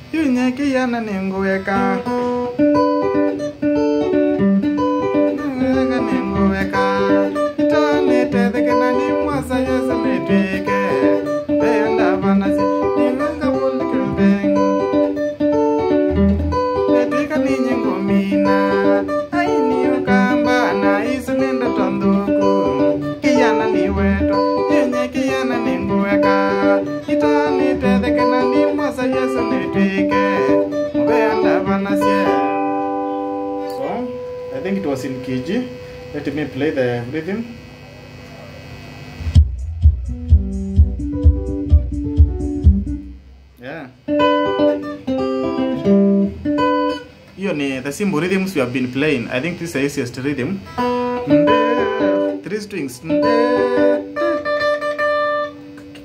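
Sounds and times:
electric guitar melody: 0.0s - 56.0s
low bass note: 39.2s - 43.7s.

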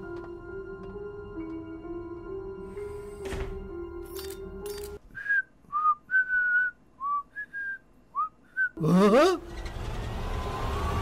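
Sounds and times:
person whistling a tune: 5.1s - 8.8s.

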